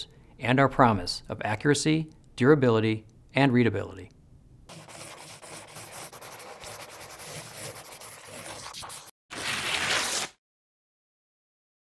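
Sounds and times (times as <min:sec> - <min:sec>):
pencil scribbling on paper: 0:04.7 - 0:09.1.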